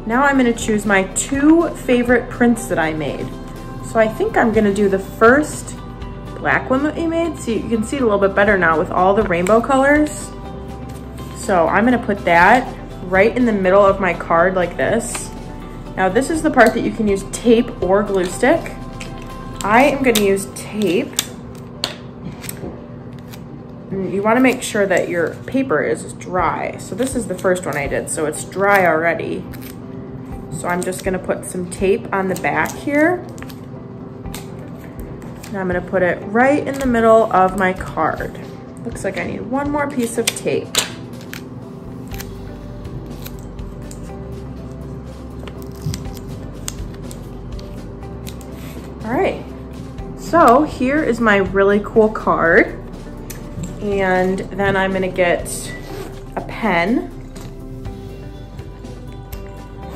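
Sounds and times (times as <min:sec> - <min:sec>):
background music with held notes: 0:00.0 - 0:59.9
adhesive tape tearing: 0:29.5 - 0:29.8, 0:40.2 - 0:44.1, 0:45.4 - 0:48.8.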